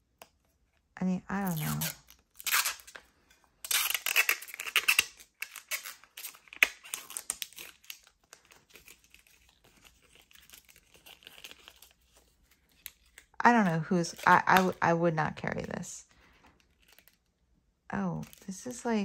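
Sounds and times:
plastic film crackling and tearing: 1.4 - 17.4.

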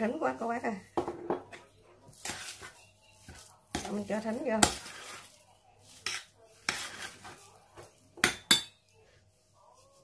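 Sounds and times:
metal spoon scraping metal bowl: 2.1 - 9.0.

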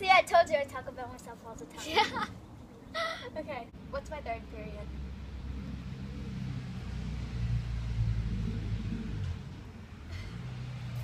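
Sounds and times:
vehicle engine rumble passing: 3.7 - 11.0.

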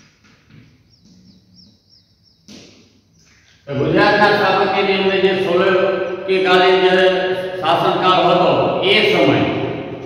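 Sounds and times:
small bird chirping: 0.1 - 3.7.

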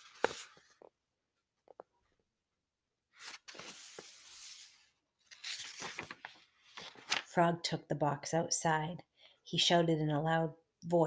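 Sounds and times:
paper book rustling: 0.0 - 0.9, 3.1 - 7.4.

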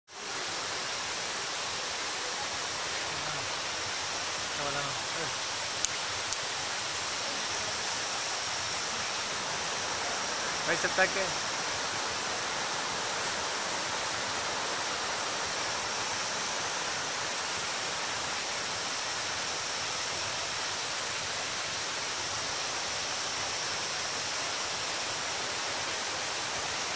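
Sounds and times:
stream rushing over boulders: 0.1 - 26.9.

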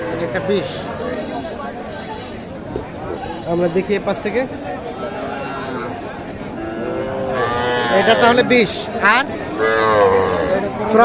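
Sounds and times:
calves mooing: 6.6 - 8.7, 9.6 - 10.7.

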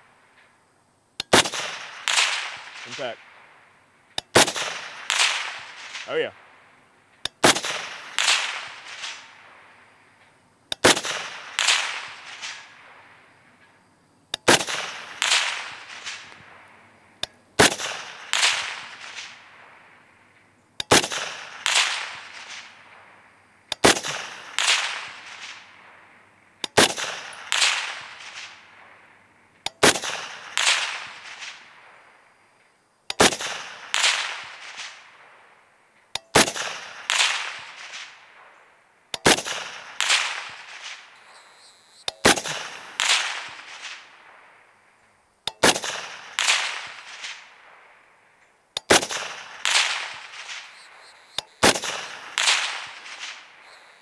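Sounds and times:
suppressed rifle shots: 1.2 - 3.5, 4.2 - 6.5, 7.2 - 13.7, 14.3 - 32.0, 33.1 - 35.5, 36.1 - 44.5, 45.4 - 47.9, 48.8 - 53.9
sharp crack: 1.2 - 13.7, 14.3 - 32.2, 33.1 - 44.8, 45.4 - 54.0.

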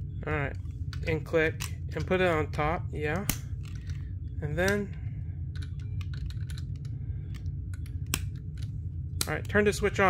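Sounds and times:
plastic pieces clicking: 5.5 - 9.5.

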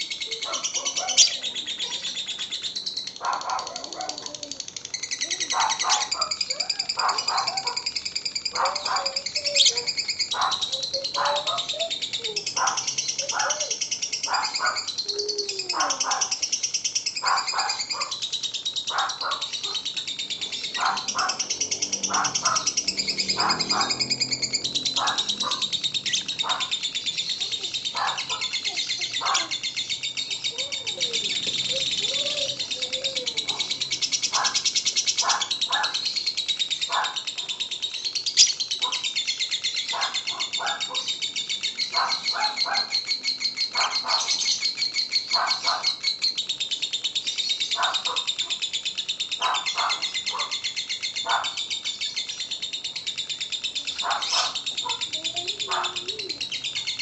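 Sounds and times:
lovebird chattering trill: 0.0 - 57.0.

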